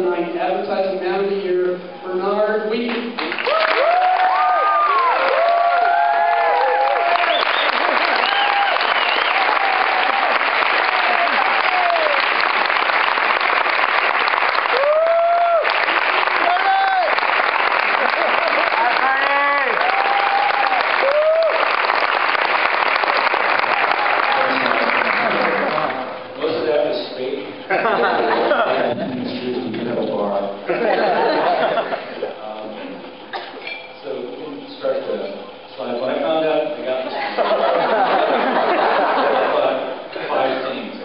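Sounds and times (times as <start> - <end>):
audience applauding: 3.2 - 26.3
crowd whoops and shouts: 3.4 - 12.4, 14.6 - 17.2, 18.1 - 21.8.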